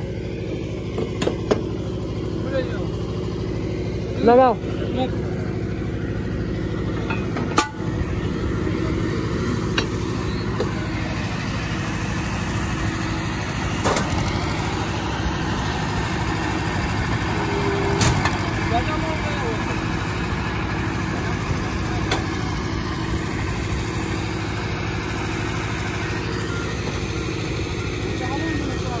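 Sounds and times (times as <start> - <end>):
electric motor humming: 12.8 - 20.4.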